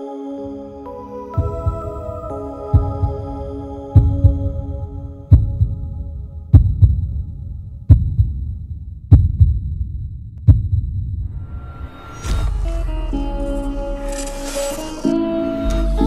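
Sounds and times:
heartbeat thumps: 1.4s - 11.4s.

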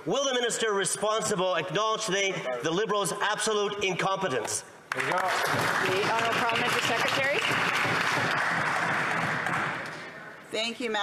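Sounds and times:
group applauding: 4.9s - 10.4s.

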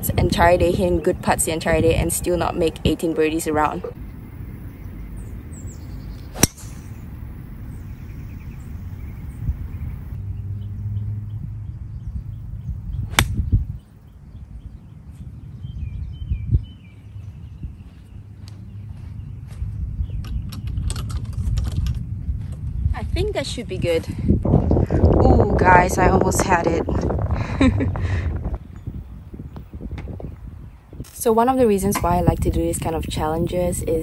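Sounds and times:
low wind rumble: 0.0s - 34.0s
golf club striking ball: 6.3s - 7.1s, 13.1s - 13.5s.

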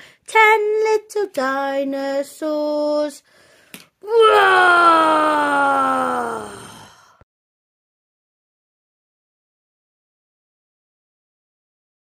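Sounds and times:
woman groaning: 4.0s - 7.2s.

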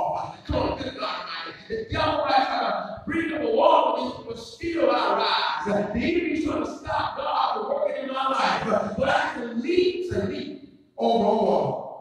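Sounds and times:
man preaching through microphone: 0.0s - 12.0s.

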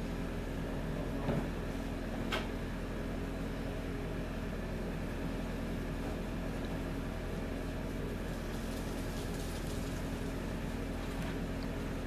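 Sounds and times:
constant hiss: 6.3s - 12.0s.

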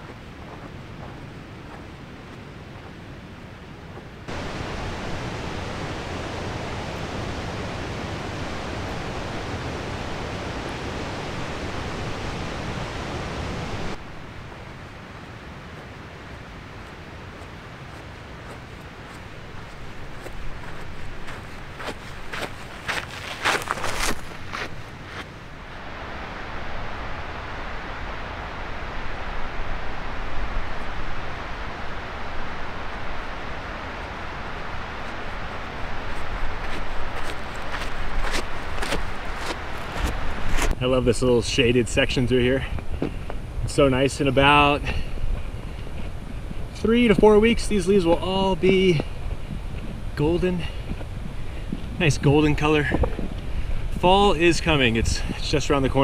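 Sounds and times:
footsteps on gravel: 0.0s - 2.4s, 15.8s - 25.4s, 36.0s - 40.8s
steady outdoor rushing noise: 0.0s - 56.0s.

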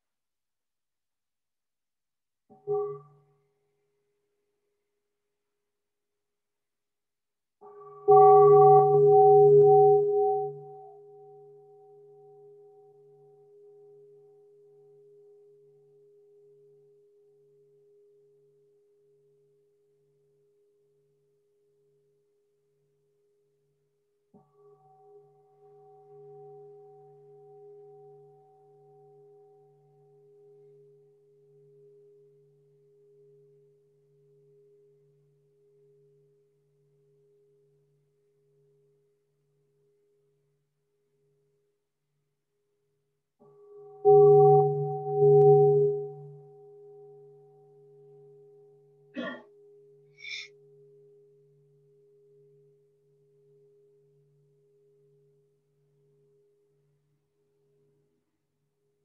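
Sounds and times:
singing bowl ringing: 7.6s - 12.6s, 43.4s - 48.6s.

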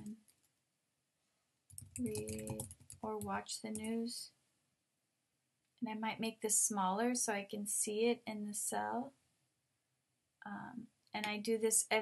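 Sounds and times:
computer keyboard keystrokes: 1.7s - 3.9s.

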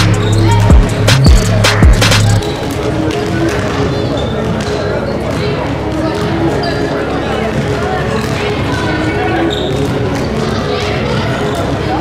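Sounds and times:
overlapping voices: 0.0s - 3.8s.

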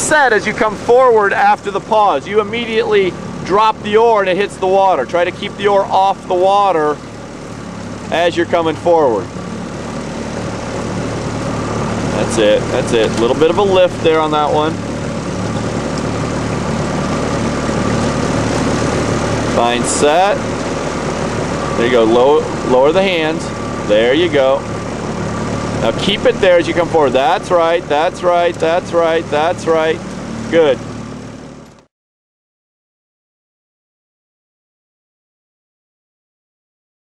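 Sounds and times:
outboard motor humming: 0.0s - 31.9s.

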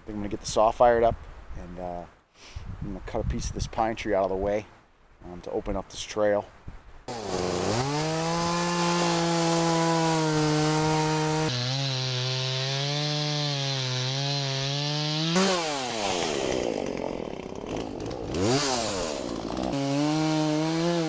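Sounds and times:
chainsaw cutting log: 7.1s - 21.0s
chainsaw idling and revving: 7.1s - 21.0s.

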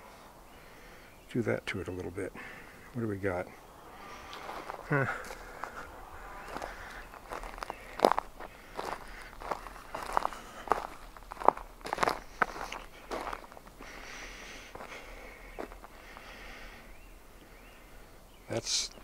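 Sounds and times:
footsteps crunching on forest trail: 2.4s - 17.8s.

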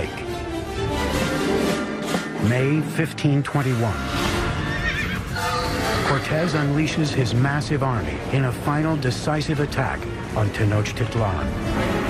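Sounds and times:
background music: 0.0s - 12.0s
horse whinnying: 4.2s - 6.7s.

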